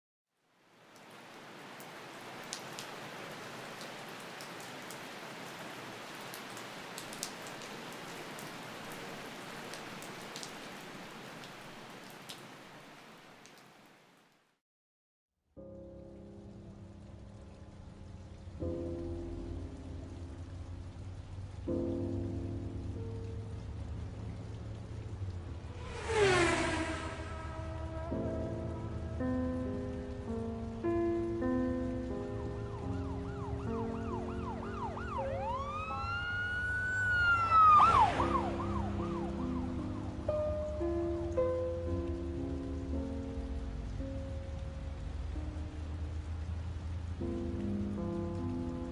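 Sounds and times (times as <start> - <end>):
rain falling: 0.4 - 14.6, 15.6 - 48.9
synthesized sweep gliding down: 25.6 - 29.2, 34.7 - 40.0.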